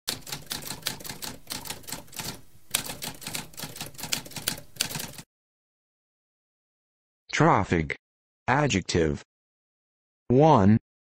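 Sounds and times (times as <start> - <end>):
typewriter typing: 0.1 - 5.2.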